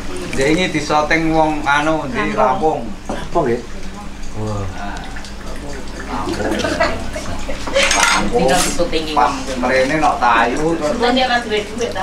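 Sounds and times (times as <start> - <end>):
people talking: 0.2 - 12.0
metal ladle scraping cooking pot: 7.7 - 8.8.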